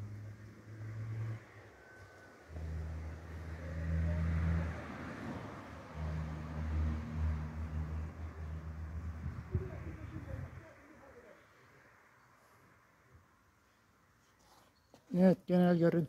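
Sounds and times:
vehicle engine humming: 0.0s - 12.1s.

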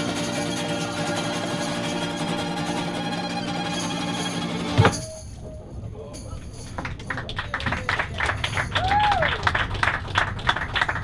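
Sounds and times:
violin: 0.0s - 5.4s
acoustic guitar: 0.0s - 5.6s.

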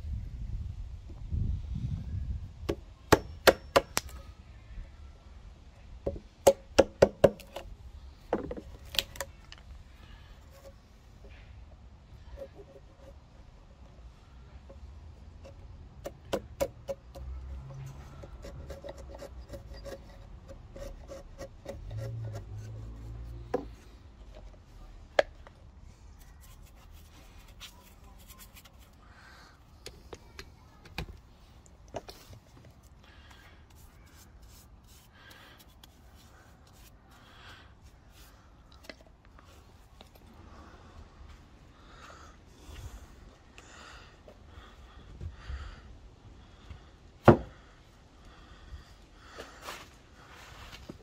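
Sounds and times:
chisel scraping wood: 17.8s - 23.8s.

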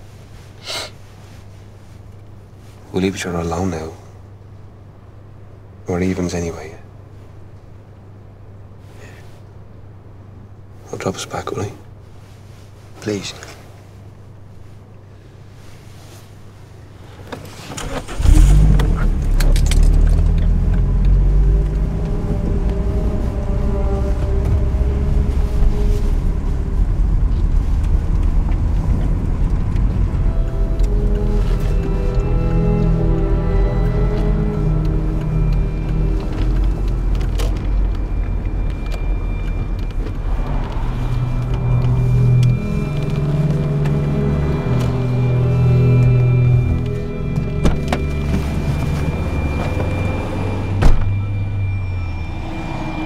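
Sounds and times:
car engine starting and idling: 17.0s - 53.0s
music of long low notes: 17.8s - 53.0s.

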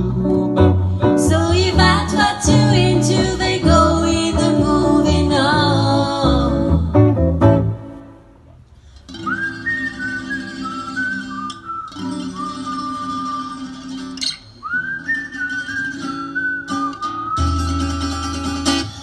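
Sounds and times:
plucked double bass: 0.0s - 8.7s, 17.3s - 19.0s
guitar: 0.0s - 19.0s
woman whistling a melody: 9.1s - 14.0s, 14.6s - 18.1s.

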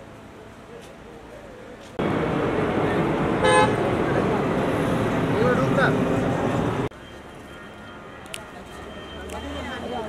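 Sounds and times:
vehicle street noise: 0.0s - 10.0s
car horn toot: 3.4s - 3.9s.

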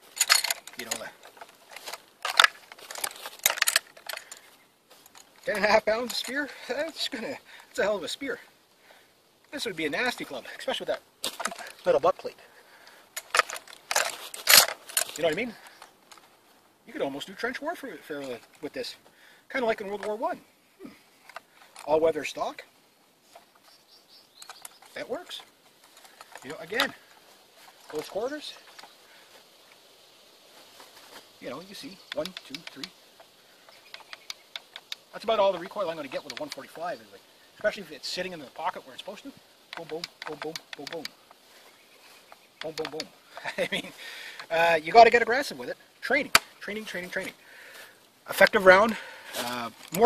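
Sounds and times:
rifle fittings clinking and rattling: 0.0s - 7.8s, 9.9s - 16.4s, 19.6s - 20.2s, 21.2s - 22.4s, 23.3s - 29.9s, 31.1s - 47.4s, 48.3s - 50.0s
high bird chirps: 23.4s - 25.0s, 33.5s - 35.0s.

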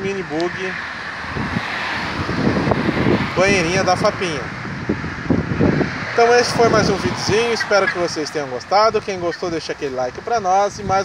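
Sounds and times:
steady outdoor hiss: 0.0s - 5.1s, 6.0s - 11.0s
wind buffeting microphone: 0.0s - 11.0s.

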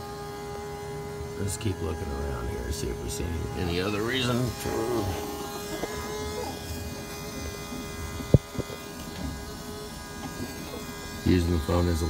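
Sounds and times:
fuel pump buzzing: 0.0s - 12.0s.

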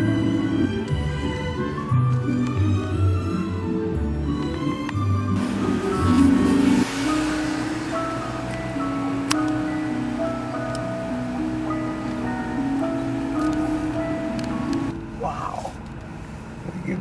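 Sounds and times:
slow instrumental melody: 0.0s - 16.6s.

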